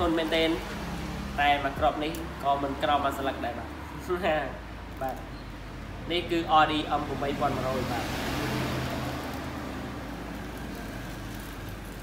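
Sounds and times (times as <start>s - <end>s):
vehicle passing by: 0.0s - 4.3s, 6.7s - 12.0s.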